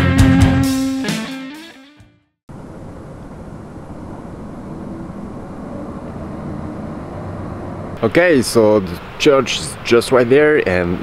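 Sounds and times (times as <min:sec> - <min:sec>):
rushing outdoor background noise: 0:02.5 - 0:11.0.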